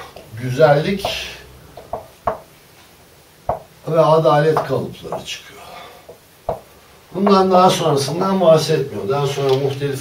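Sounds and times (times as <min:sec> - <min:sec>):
marker tapping whiteboard: 0:01.0 - 0:01.2, 0:01.8 - 0:02.5, 0:03.4 - 0:03.7, 0:04.5 - 0:05.4, 0:06.1 - 0:08.3.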